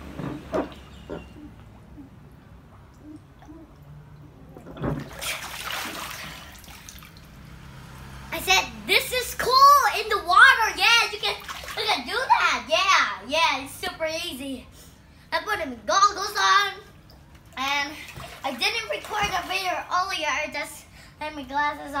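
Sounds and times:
water splashing in paddling pool: 2.8 - 8.3, 9.4 - 12.5, 17.1 - 20.2
child's voice: 8.3 - 17.0, 17.6 - 22.0.

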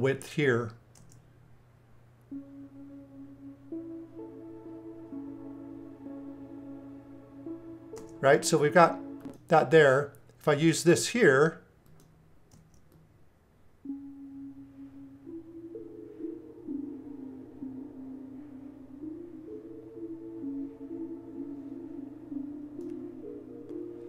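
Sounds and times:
sustained low synth tones: 2.3 - 9.7, 13.9 - 24.0.

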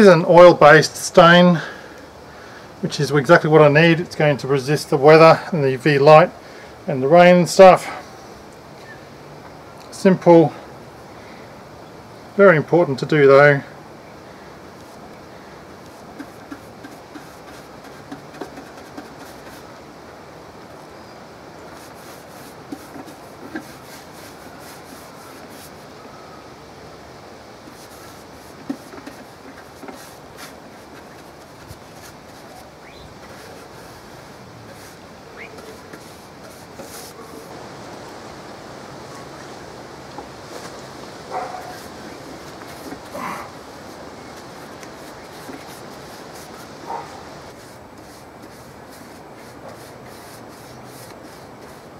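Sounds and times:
quiet background hiss: 0.0 - 51.9
paintbrush taps and clicks: 16.2 - 19.6.

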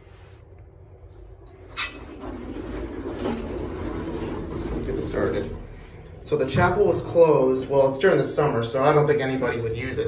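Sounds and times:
elevator machinery rumbling and rattling: 0.7 - 10.0.

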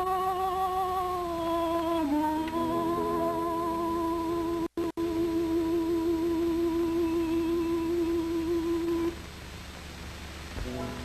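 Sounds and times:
man humming a held note: 0.0 - 9.2
film soundtrack hiss: 0.0 - 11.0.

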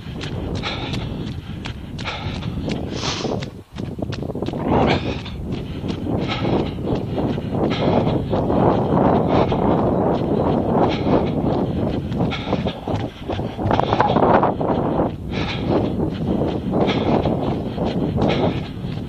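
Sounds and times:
footsteps on wet path: 0.0 - 19.0.

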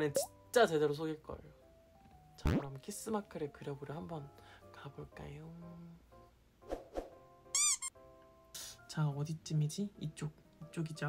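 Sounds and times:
light background music: 0.0 - 11.0
high cartoon squeaks: 7.6 - 7.9.

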